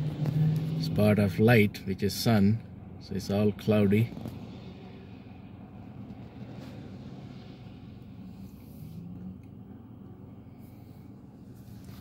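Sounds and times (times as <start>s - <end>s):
car engine rumble from cabin: 0.0s - 12.0s.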